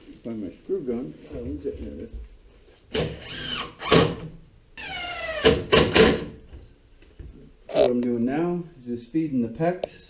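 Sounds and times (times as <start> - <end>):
sharp knocks: 5.4 - 6.4.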